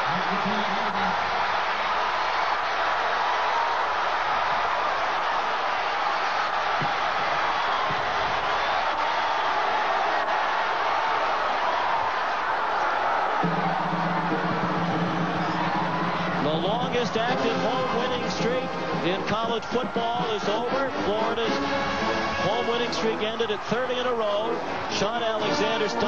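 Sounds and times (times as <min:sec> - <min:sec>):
stadium crowd cheering: 0:00.0 - 0:26.0.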